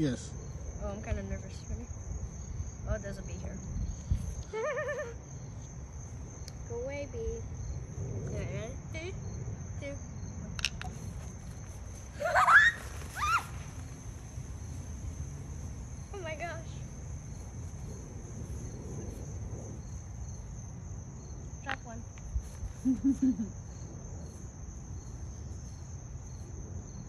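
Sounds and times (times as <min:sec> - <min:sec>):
crickets chirping: 0:00.0 - 0:27.0
person laughing: 0:04.5 - 0:05.2, 0:22.8 - 0:23.6
child shrieking: 0:12.2 - 0:13.6.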